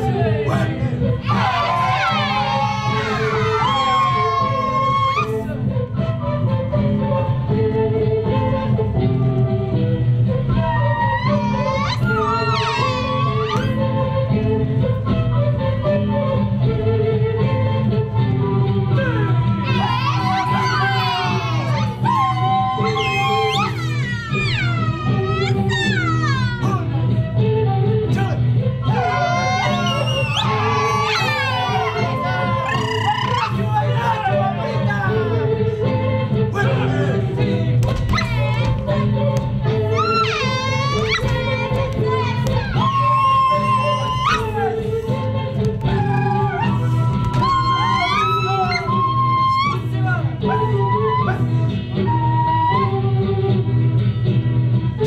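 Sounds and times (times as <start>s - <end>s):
folk music with low bass: 0.0s - 55.0s
group shouting and whooping: 0.6s - 5.5s, 10.6s - 13.8s, 19.0s - 26.9s, 28.1s - 35.5s, 39.8s - 45.0s, 45.8s - 51.6s.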